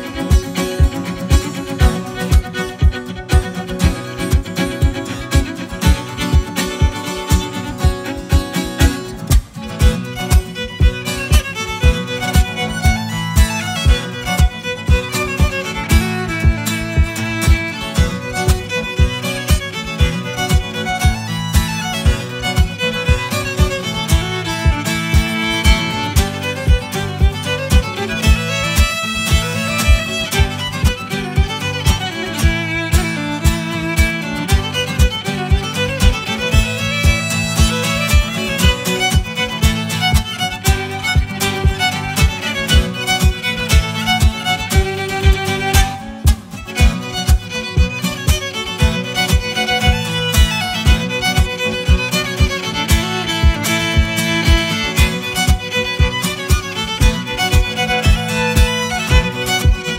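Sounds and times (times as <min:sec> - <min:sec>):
fiddle playing: 0:00.0 - 0:59.9
strummed acoustic guitar: 0:00.0 - 0:59.9
low thump on the beat: 0:00.3 - 0:59.9.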